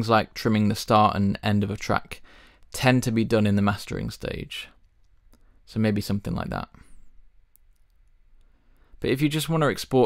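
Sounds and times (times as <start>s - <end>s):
computer mouse clicks: 7.5s - 8.5s.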